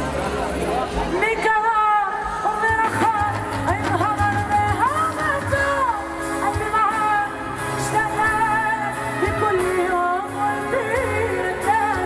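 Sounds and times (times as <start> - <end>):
live pop band playing: 0.0 - 12.0
woman singing into microphone: 0.9 - 12.0.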